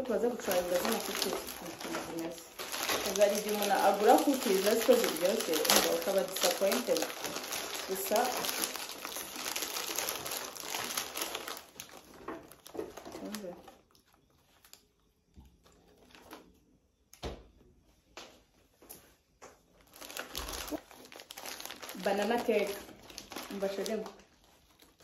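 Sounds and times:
plastic bag handled: 0.0s - 14.8s, 19.8s - 25.0s
plastic and foil wrapping crinkling: 0.0s - 16.8s, 19.6s - 25.0s
paper bag rustling: 0.1s - 13.7s, 19.8s - 25.0s.

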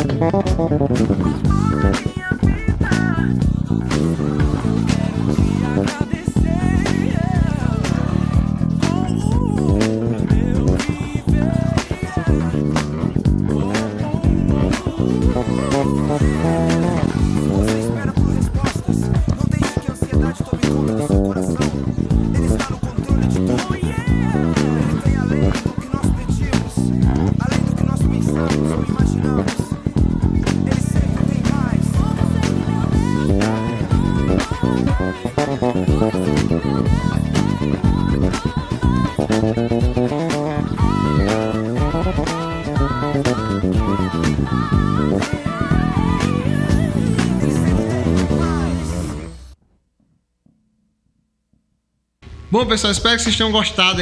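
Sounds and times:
bass guitar playing: 0.0s - 49.6s.

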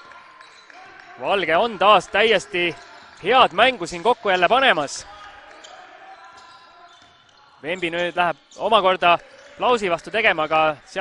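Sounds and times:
indoor hall background: 0.0s - 11.0s.

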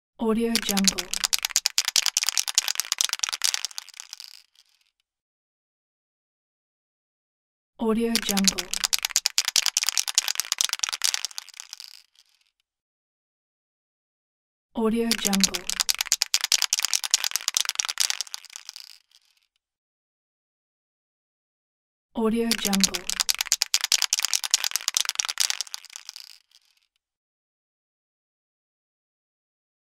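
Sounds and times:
spray can rattling while shaken: 0.6s - 4.8s, 8.2s - 12.5s, 15.1s - 19.4s, 22.5s - 26.9s.

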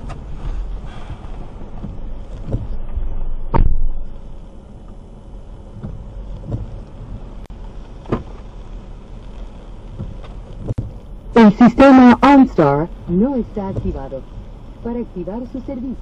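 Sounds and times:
dull knocks and thumps: 0.0s - 4.0s, 5.7s - 7.3s, 8.0s - 8.5s, 9.9s - 11.0s
car cabin rumble: 0.0s - 16.0s.

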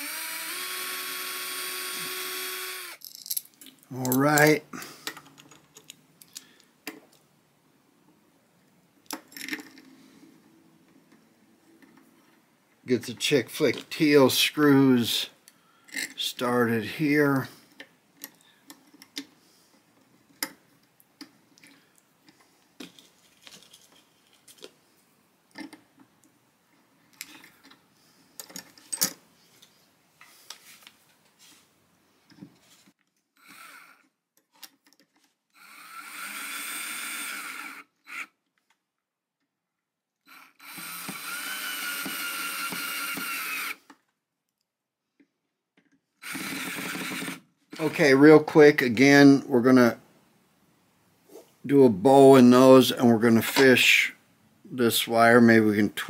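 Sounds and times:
cordless drill whine: 0.0s - 3.0s, 33.4s - 34.0s, 35.6s - 38.3s, 40.3s - 43.9s, 46.2s - 47.4s
screws clicking by hand: 40.3s - 44.0s, 46.2s - 47.4s.

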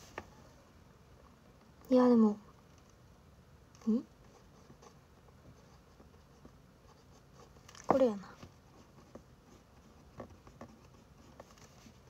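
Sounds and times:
pen writing on paper: 8.7s - 11.6s.

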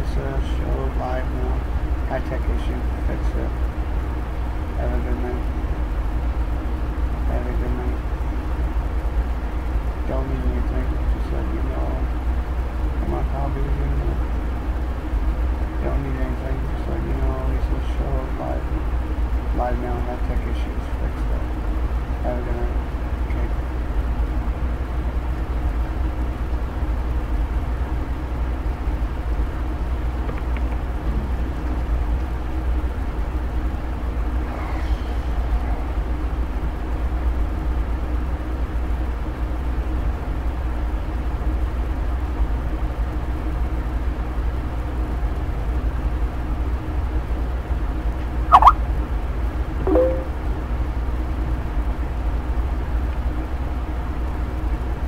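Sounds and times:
sharp electronic blip: 48.5s - 48.8s, 49.9s - 50.4s
low hum: 49.9s - 50.4s.

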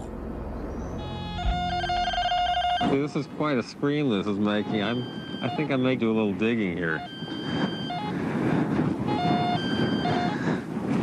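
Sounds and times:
metal detector tone: 1.0s - 3.0s, 7.0s - 8.1s, 9.1s - 10.3s.

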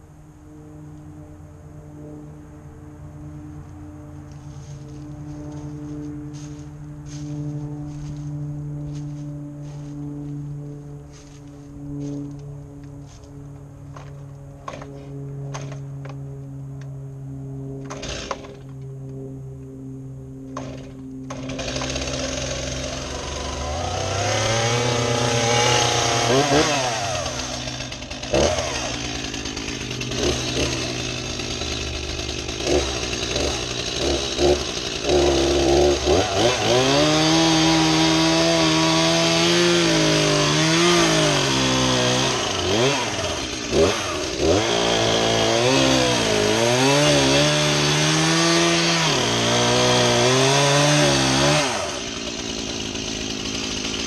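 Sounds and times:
chainsaw cutting log: 13.9s - 16.2s, 17.8s - 18.8s, 20.5s - 54.0s.

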